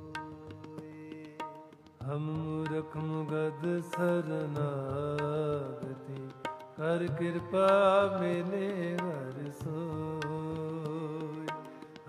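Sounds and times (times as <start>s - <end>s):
harmonium playing reedy melody: 0.0s - 12.0s
tabla strokes: 0.0s - 12.0s.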